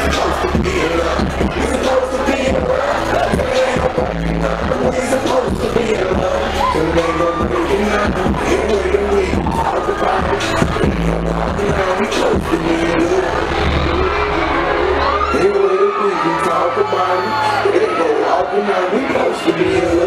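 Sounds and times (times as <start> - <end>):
crowd voices: 0.0 - 20.0
hip-hop music with heavy bass: 0.0 - 20.0
rapping: 0.0 - 20.0.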